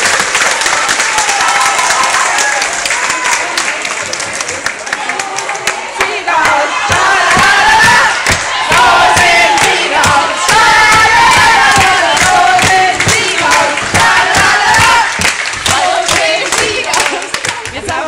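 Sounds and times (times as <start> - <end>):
people clapping: 0.0 - 18.0
young women cheering and chanting: 5.1 - 18.0.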